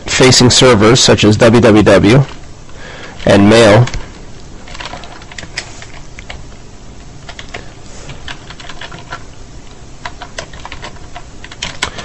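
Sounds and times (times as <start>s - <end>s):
low background hum: 0.0s - 12.0s
computer keyboard typing: 3.2s - 6.4s, 7.2s - 12.0s.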